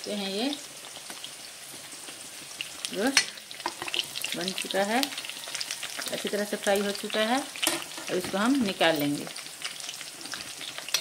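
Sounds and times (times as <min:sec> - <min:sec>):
chicken frying in hot oil: 0:00.0 - 0:11.0.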